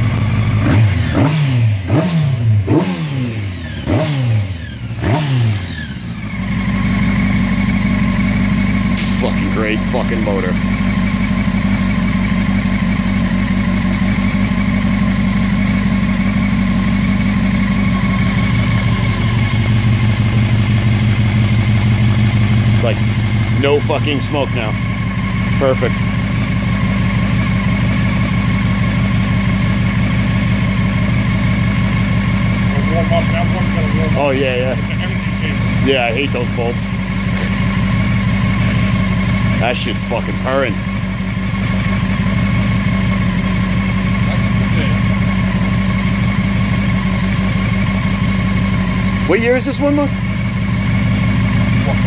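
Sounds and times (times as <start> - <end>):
motorcycle engine idling: 0.0 - 52.0.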